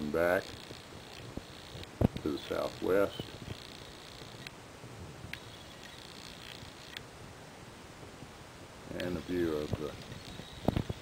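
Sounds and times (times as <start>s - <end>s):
small clicks: 5.3s - 7.1s.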